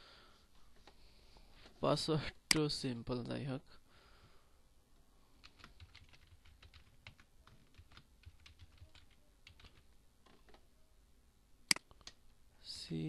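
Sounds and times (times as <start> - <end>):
typing on keyboard: 5.4 - 10.6.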